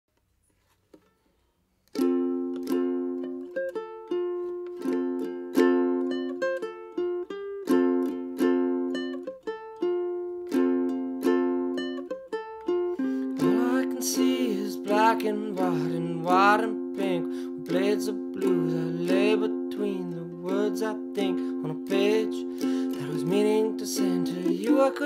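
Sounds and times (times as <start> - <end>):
ukulele strumming chords: 1.9 - 25.0
man singing: 13.4 - 25.0.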